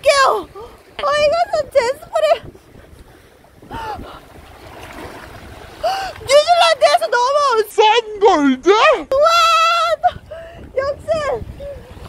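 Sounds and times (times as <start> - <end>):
wind noise on microphone: 0.0 - 7.7, 8.8 - 12.0.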